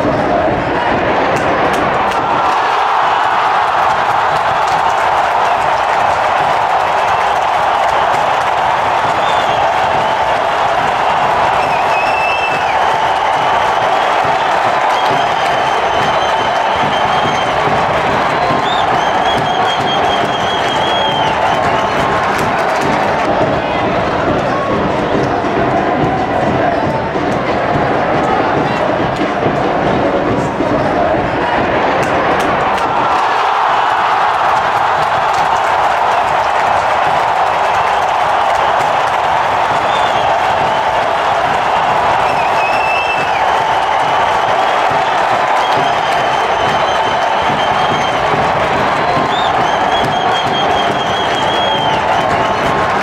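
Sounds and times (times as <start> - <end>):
crowd cheering and chanting: 0.0 - 53.0.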